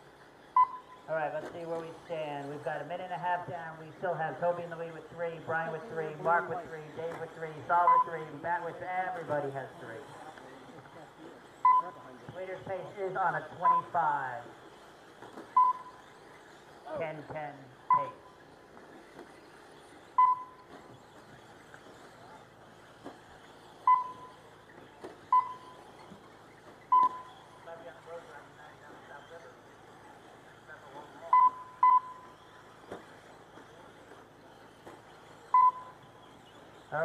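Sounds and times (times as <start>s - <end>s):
outdoor murmur: 0.0s - 37.0s
short electronic beeps: 0.5s - 1.1s, 7.8s - 8.2s, 11.6s - 12.1s, 15.5s - 16.1s, 17.9s - 18.4s, 20.1s - 20.7s, 23.8s - 24.4s, 25.2s - 25.8s, 26.8s - 27.5s, 31.3s - 32.5s, 35.5s - 36.0s.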